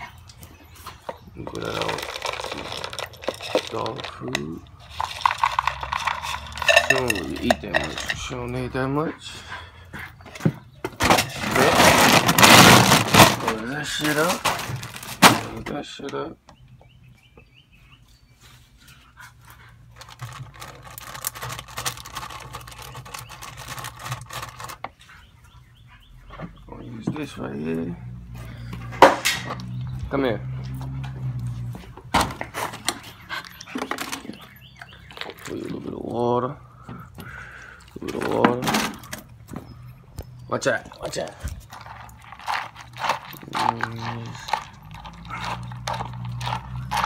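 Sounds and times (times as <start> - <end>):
kibble clattering in plastic bowl: 1.3 - 8.3, 11.0 - 15.6, 20.0 - 24.8, 41.1 - 47.0
plastic bag rustling: 1.4 - 8.0, 11.0 - 15.6, 20.0 - 24.8.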